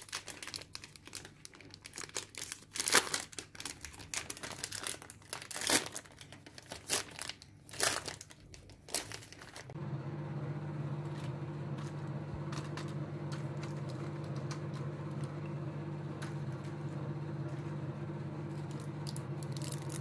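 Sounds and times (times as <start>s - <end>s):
plastic wrapper crinkling and tearing: 0.0s - 9.8s, 18.5s - 20.0s.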